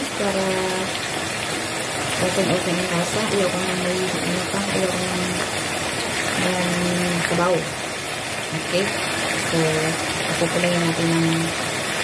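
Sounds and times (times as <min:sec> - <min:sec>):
sauce sizzling in a frying pan: 0:00.0 - 0:12.0.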